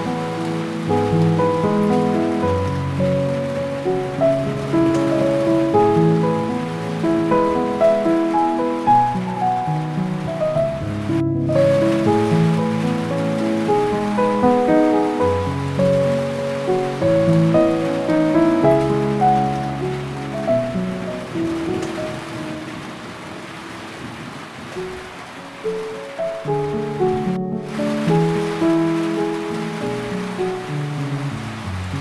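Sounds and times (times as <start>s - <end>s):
calm slow piano music: 0.0s - 32.0s
soft steady rain: 0.0s - 32.0s.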